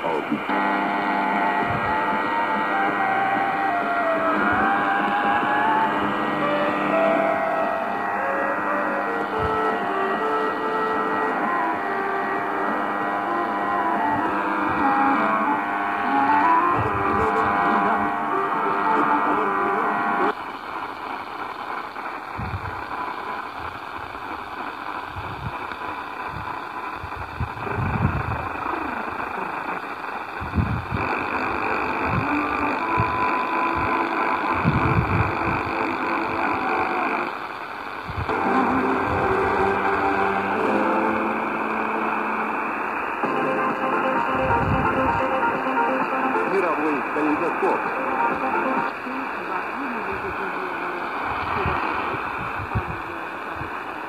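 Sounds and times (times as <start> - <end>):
hissy radio static: 0.0 - 54.0
music from radio speaker: 0.0 - 54.0.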